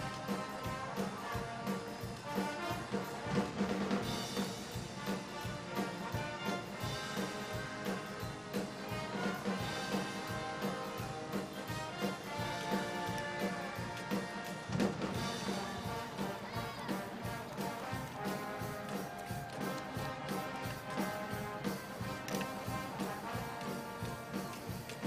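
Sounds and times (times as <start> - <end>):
brass and drums band playing: 0.0 - 25.0.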